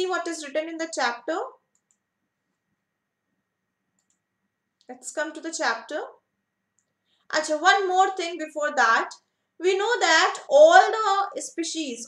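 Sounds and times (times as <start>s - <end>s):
woman's voice: 0.0s - 1.6s, 4.9s - 6.2s, 7.3s - 12.0s
computer mouse clicks: 1.7s - 2.1s, 3.9s - 4.9s.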